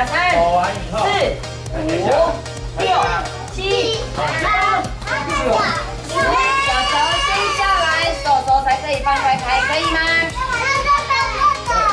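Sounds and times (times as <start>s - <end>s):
background music with beat: 0.0s - 11.9s
children chattering: 3.9s - 11.9s.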